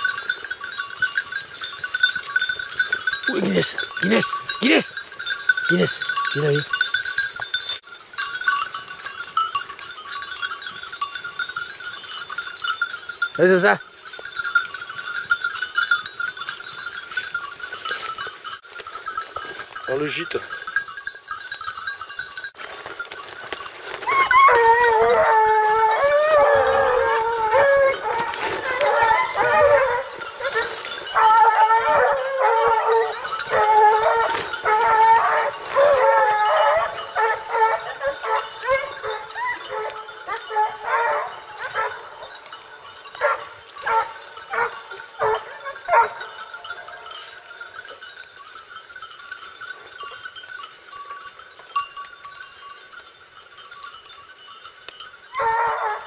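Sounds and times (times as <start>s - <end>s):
hounds baying in chorus: 1.6s - 6.7s, 23.8s - 47.6s, 55.3s - 56.0s.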